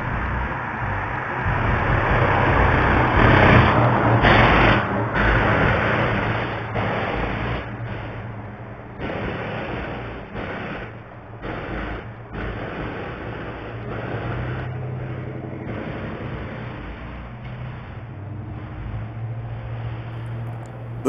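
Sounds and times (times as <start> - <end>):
car driving past: 0.0 - 9.0
steady low hum: 0.0 - 21.0.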